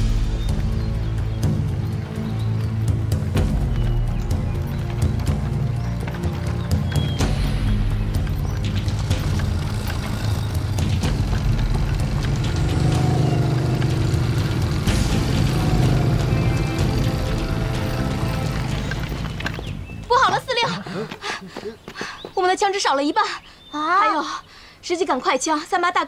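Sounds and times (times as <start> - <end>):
dramatic background music: 0.0 - 20.8
motorcycle engines rumbling: 0.4 - 21.2.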